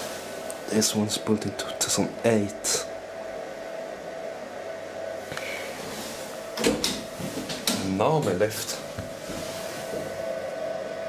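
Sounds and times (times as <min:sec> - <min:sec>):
platform lift humming: 0:00.0 - 0:11.0.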